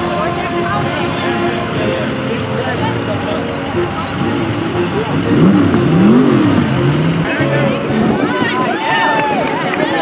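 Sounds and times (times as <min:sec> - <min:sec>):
vehicle engine revving: 0:00.0 - 0:08.4
hum of engines: 0:00.0 - 0:10.0
people's voices: 0:00.0 - 0:10.0.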